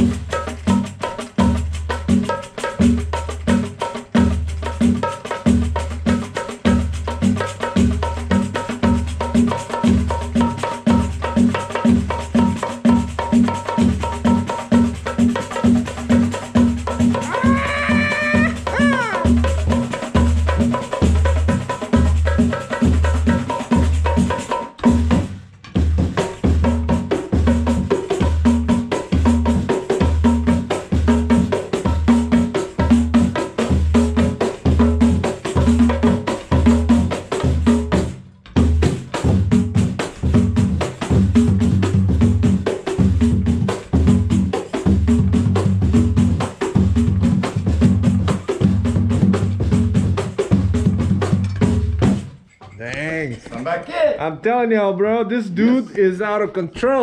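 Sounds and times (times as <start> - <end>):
low surdo drum beat: 0.0 - 52.4.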